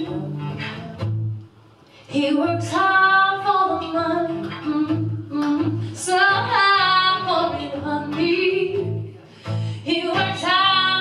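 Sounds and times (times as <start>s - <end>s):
woman singing: 0.0s - 1.2s, 2.1s - 9.2s, 9.8s - 11.0s
strummed acoustic guitar: 0.0s - 1.5s, 2.1s - 11.0s.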